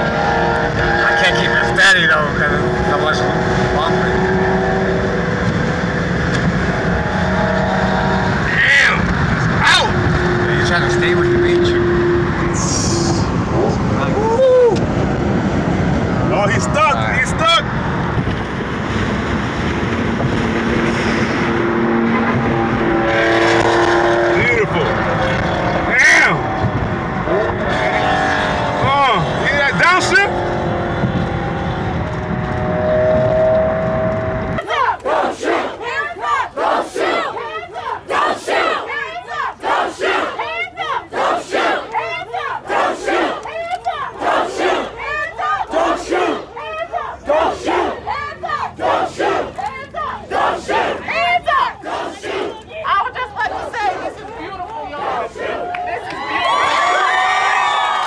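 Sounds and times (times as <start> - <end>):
car road and engine noise: 0.0 - 58.0
crowd chanting and shouting: 34.6 - 56.4.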